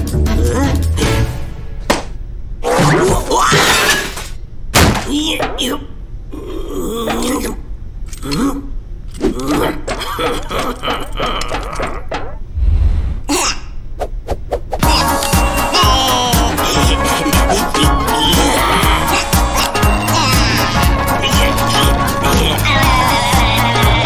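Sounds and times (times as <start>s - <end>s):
cartoon voice grunting and mumbling: 0.2s - 1.1s, 5.4s - 7.6s, 13.3s - 13.8s, 14.8s - 24.0s.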